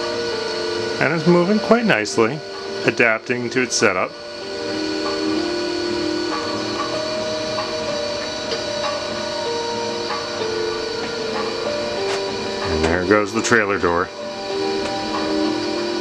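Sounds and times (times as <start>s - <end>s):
motors whining: 0.0s - 16.0s.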